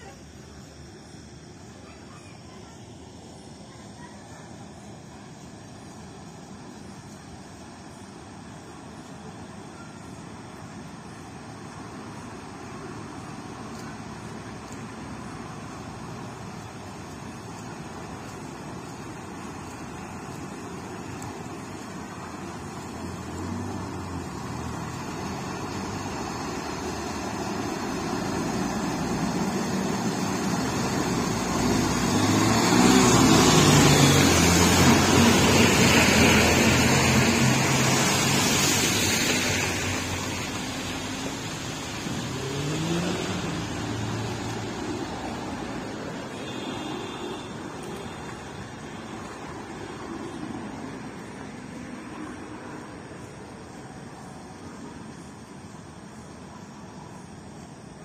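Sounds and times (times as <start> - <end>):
tyres swishing through water: 0.0 - 58.0
vehicle engine passing: 18.8 - 46.4
engine revving: 23.1 - 38.6, 41.8 - 45.4.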